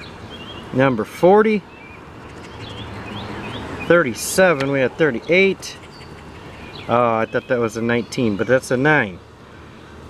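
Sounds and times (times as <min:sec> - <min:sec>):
faint bird chirps: 0:05.2 - 0:08.6.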